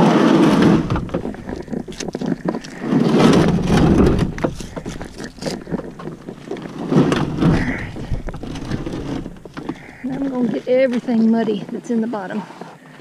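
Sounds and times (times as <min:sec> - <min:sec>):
kayak hull scraping on dirt: 0:00.0 - 0:13.0.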